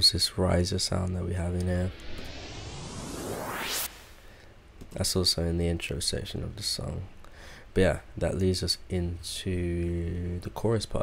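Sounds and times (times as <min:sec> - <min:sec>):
rising riser sweep: 0:01.5 - 0:04.3.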